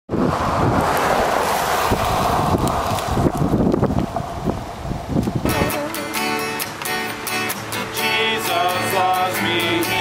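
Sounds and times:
wind buffeting microphone: 0.1s - 7.8s
road traffic hiss: 0.1s - 10.0s.

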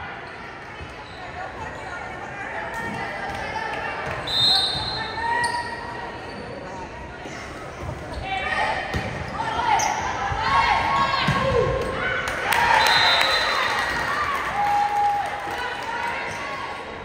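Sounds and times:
voices chattering in hall: 0.0s - 17.0s
sneakers squeaking on gym floor: 4.1s - 10.3s.

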